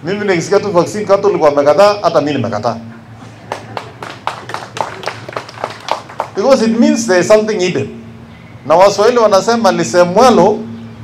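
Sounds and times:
people clapping: 3.2 - 6.6.

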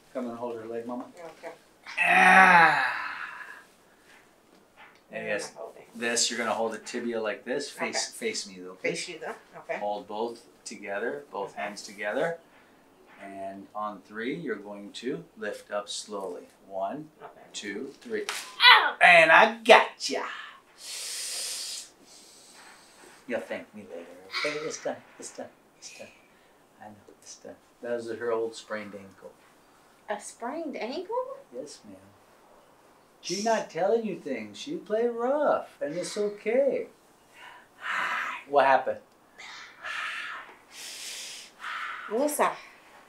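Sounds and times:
faint hiss: 0.0 - 43.0
person hissing through teeth: 1.9 - 3.7, 20.8 - 23.2, 24.3 - 24.9, 39.4 - 42.2
person breathing sounds: 2.4 - 4.3, 20.7 - 23.3, 39.4 - 43.0.

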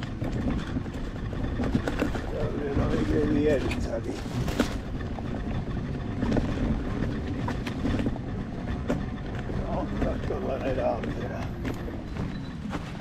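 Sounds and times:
wind buffeting microphone: 0.0 - 12.8
clicks and knocks from bumpy ground: 0.0 - 13.0
low rumble of electric unicycle: 0.0 - 13.0.

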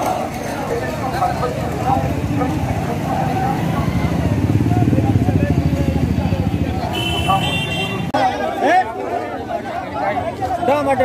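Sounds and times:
motorcycle engine rumble: 0.0 - 8.2
marching crowd voices: 0.0 - 11.0.

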